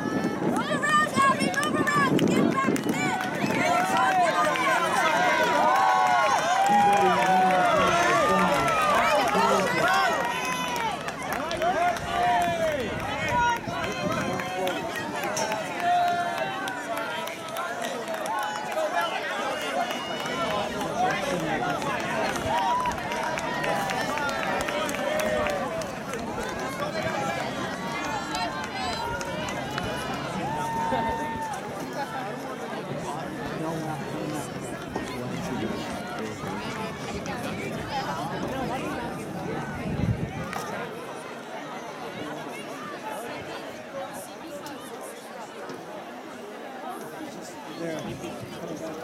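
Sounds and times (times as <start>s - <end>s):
spectators yelling and cheering: 0.0s - 45.6s.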